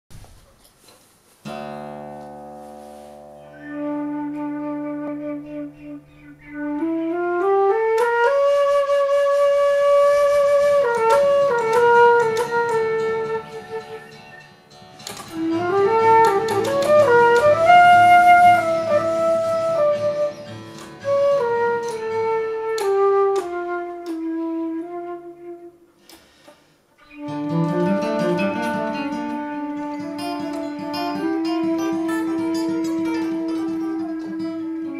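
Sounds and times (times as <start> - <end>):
acoustic guitar: 0.1 - 34.9
flute melody: 3.1 - 26.2, 27.0 - 34.9.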